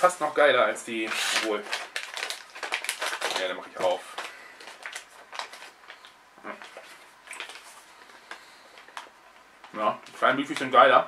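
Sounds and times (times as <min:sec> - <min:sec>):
plastic packaging crinkling: 0:00.0 - 0:11.0
scissors snipping plastic packet: 0:01.0 - 0:05.7.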